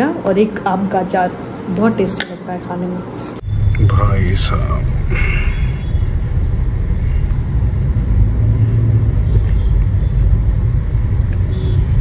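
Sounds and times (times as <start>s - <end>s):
road noise: 0.0s - 12.0s
car engine rumble: 3.4s - 12.0s.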